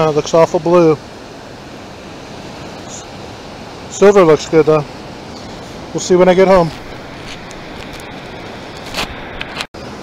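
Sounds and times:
surf: 0:00.0 - 0:10.0
wind: 0:00.0 - 0:10.0.

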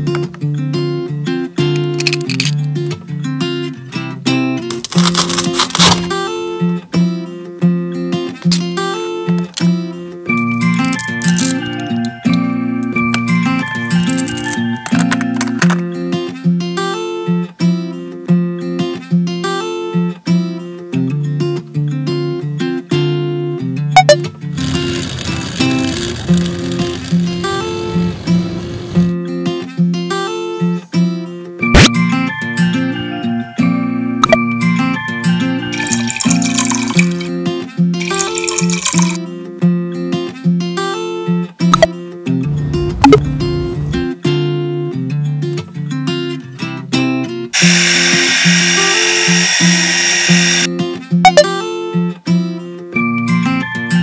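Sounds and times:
acoustic guitar music: 0:00.0 - 0:54.0
blender whirring: 0:24.6 - 0:29.0, 0:35.8 - 0:37.2, 0:47.6 - 0:50.7
button clicks: 0:51.3 - 0:51.5.

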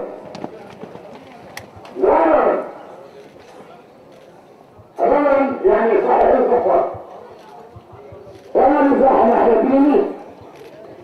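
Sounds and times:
background murmur: 0:00.0 - 0:11.0.

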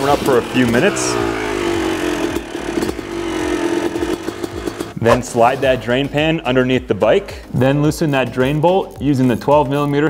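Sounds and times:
dirt bike engine running: 0:00.0 - 0:05.8.

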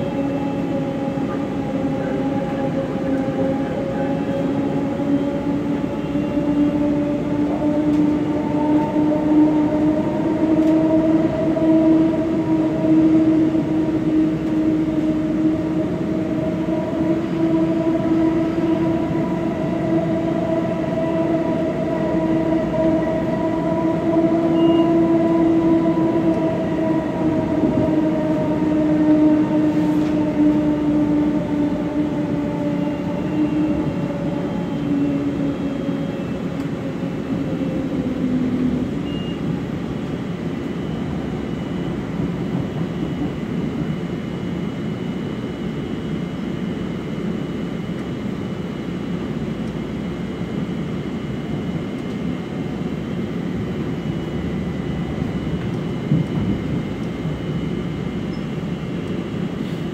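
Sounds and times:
wheels rumbling on track: 0:00.0 - 0:59.9.

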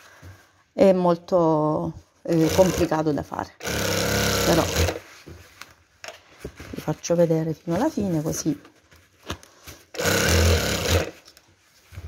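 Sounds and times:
sewing machine humming: 0:02.3 - 0:02.9, 0:03.6 - 0:05.0, 0:09.9 - 0:11.2.

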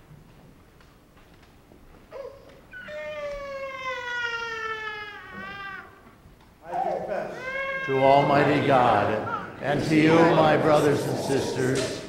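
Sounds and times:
small child crying: 0:02.1 - 0:06.0, 0:06.7 - 0:08.2.

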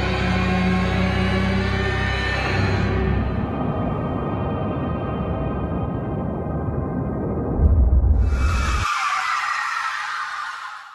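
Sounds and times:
deep rumble: 0:05.5 - 0:08.9
high noisy screech: 0:08.2 - 0:10.9.

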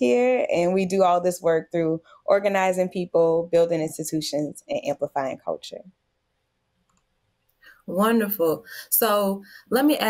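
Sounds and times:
woman speaking: 0:00.0 - 0:05.9, 0:07.8 - 0:10.0.

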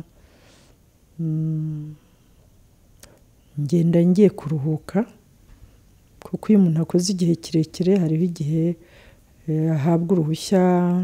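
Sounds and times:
woman humming: 0:01.2 - 0:02.0
person speaking: 0:03.6 - 0:05.2, 0:06.2 - 0:08.8, 0:09.4 - 0:11.0.

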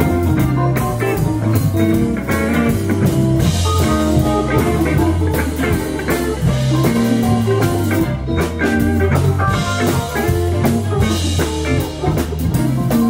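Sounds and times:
drums striking: 0:00.0 - 0:13.0
live blues band: 0:00.0 - 0:13.0.

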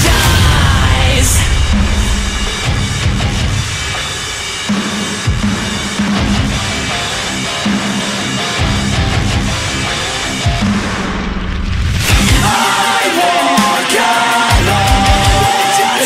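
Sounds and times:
heavy metal instrumental: 0:00.0 - 0:16.0.

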